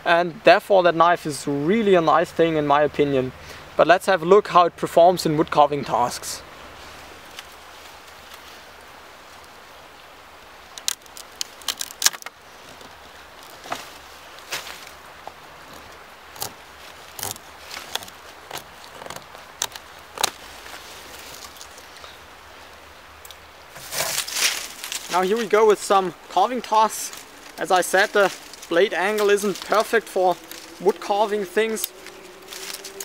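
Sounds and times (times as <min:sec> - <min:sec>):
steady outdoor hiss: 0:00.0 - 0:33.0
branch and leaves rustling: 0:05.4 - 0:33.0
sapling cracking and crackling: 0:10.5 - 0:22.3, 0:23.2 - 0:33.0.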